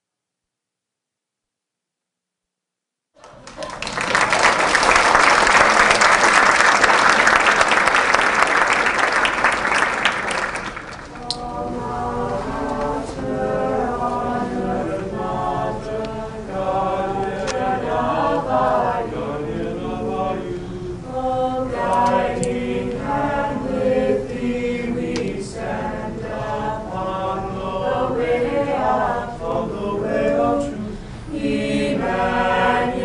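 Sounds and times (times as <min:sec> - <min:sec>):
mixed choir singing unaccompanied: 0:11.1 - 0:33.0.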